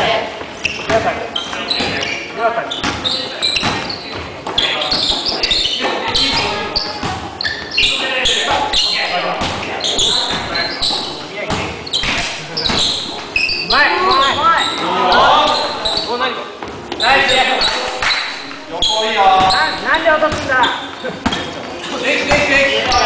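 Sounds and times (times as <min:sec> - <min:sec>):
players' voices and calls: 0:00.0 - 0:23.0
basketballs bouncing on hardwood floor: 0:06.0 - 0:07.7, 0:19.3 - 0:20.6, 0:22.3 - 0:23.0.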